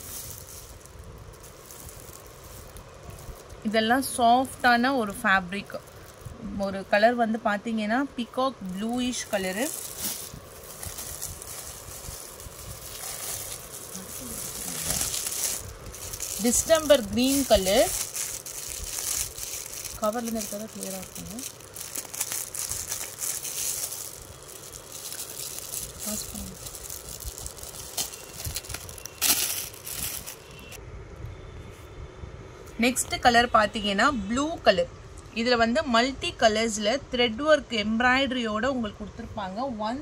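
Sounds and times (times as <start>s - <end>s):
cloth shawl rustling: 0.0s - 6.5s, 8.6s - 30.8s
plastic wrapping crinkling: 0.0s - 7.1s, 8.1s - 30.8s
low background rumble: 0.0s - 31.3s.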